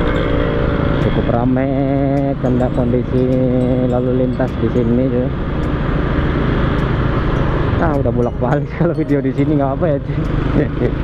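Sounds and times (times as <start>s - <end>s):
scooter engine running: 0.0s - 11.0s
traffic: 0.0s - 11.0s.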